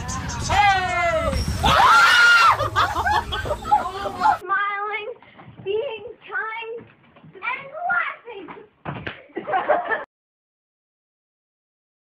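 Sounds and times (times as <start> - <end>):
children talking: 0.5 - 8.7.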